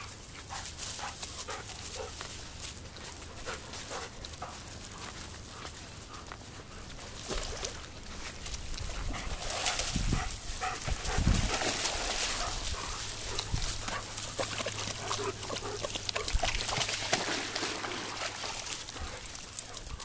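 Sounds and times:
paws splashing through water and grass: 0.0s - 20.0s
dogs vocalizing: 10.1s - 16.8s, 18.3s - 20.0s.

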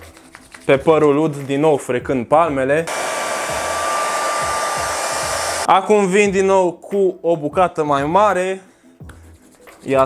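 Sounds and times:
hair dryer blowing: 2.9s - 5.7s.

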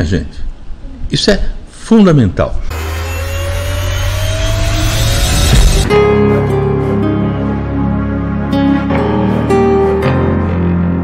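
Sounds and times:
rising whoosh effect: 2.7s - 8.4s
tone climbing in pitch: 2.7s - 9.4s.

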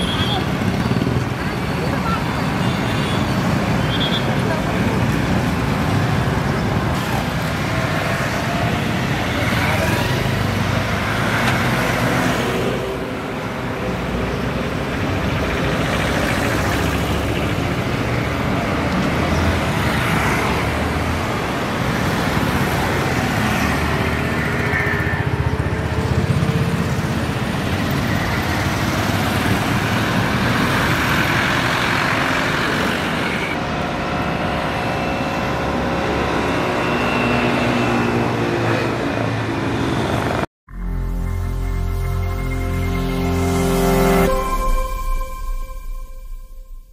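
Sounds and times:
road traffic passing: 0.0s - 46.9s.

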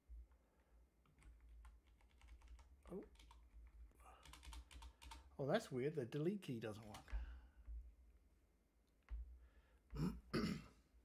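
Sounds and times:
faint keyboard typing: 0.3s - 5.4s, 6.6s - 8.0s, 8.9s - 10.0s.

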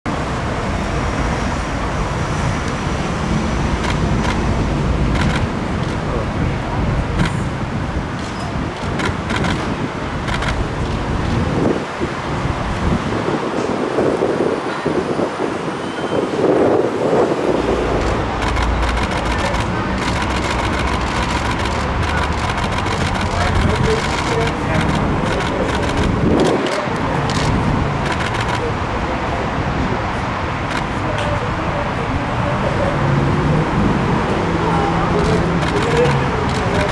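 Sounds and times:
city street traffic: 0.0s - 36.9s
rapid sharp clicks: 5.1s - 6.0s, 8.8s - 10.6s, 18.0s - 28.6s, 35.6s - 36.9s
people talking: 5.2s - 7.5s, 18.0s - 36.9s
low vehicle rumble: 17.4s - 36.9s.

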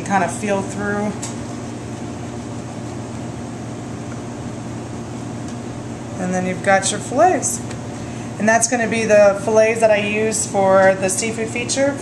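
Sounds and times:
ventilation fan hum: 0.0s - 12.0s.

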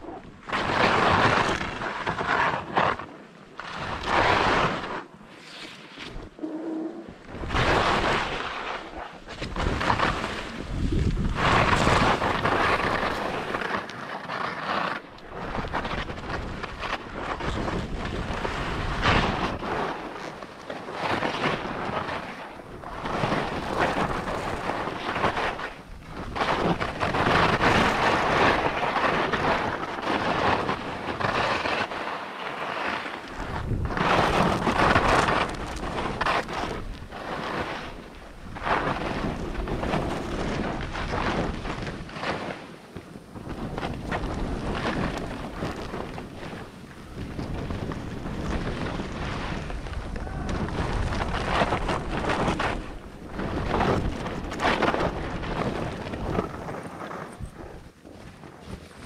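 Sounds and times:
skis scraping on hard snow: 0.0s - 6.5s, 7.2s - 59.0s
wind rushing over microphone: 6.0s - 59.0s.

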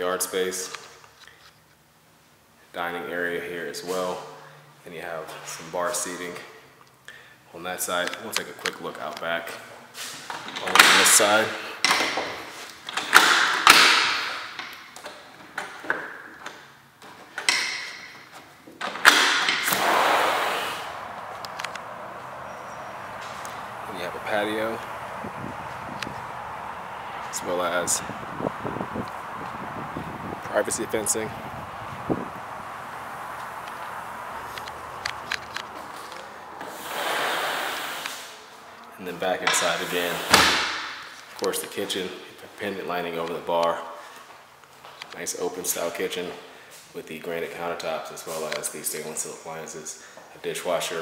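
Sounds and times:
door opening rush: 10.1s - 41.2s
door latch clicking and rattling: 18.8s - 19.8s
wind on microphone: 19.7s - 36.0s.

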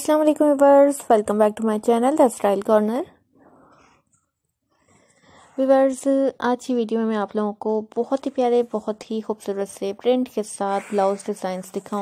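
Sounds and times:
faint breathy noise: 3.4s - 5.7s.

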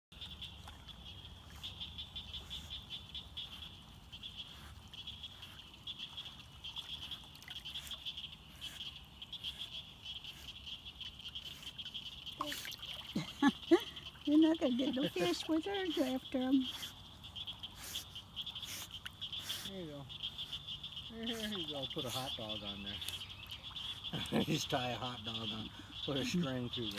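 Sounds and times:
chorus of frogs calling: 0.2s - 26.9s.

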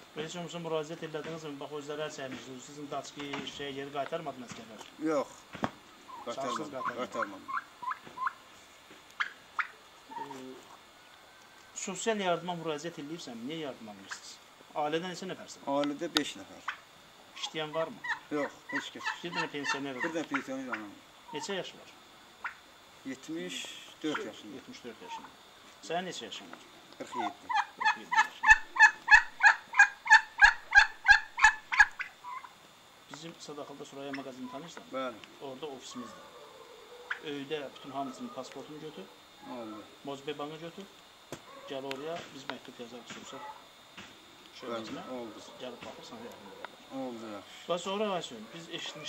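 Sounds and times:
poultry calling: 5.9s - 8.5s, 9.2s - 12.7s, 17.4s - 21.6s, 25.0s - 25.4s, 27.0s - 32.6s, 35.7s - 40.0s, 41.4s - 42.1s, 43.2s - 46.9s.

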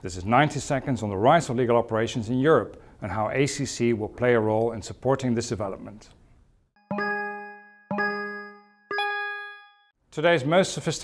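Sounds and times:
electronic chime notes: 6.8s - 10.0s.

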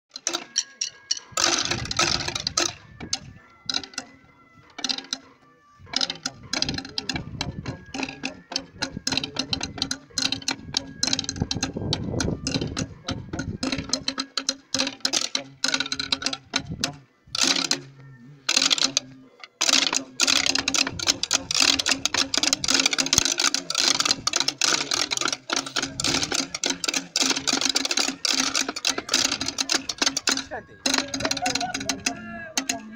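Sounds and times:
rapid snare drumming: 1.4s - 2.8s, 5.9s - 16.6s, 19.6s - 32.9s.

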